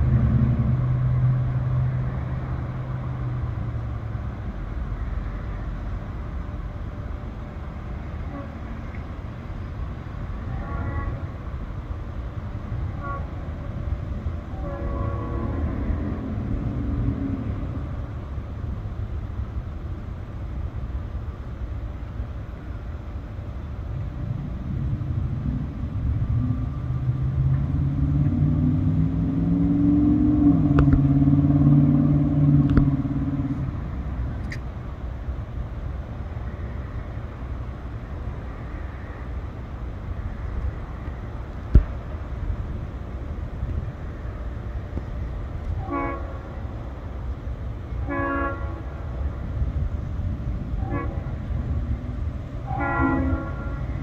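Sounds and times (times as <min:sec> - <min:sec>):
distant freight train approaching: 0:00.0 - 0:54.0
road traffic rumble: 0:00.0 - 0:54.0.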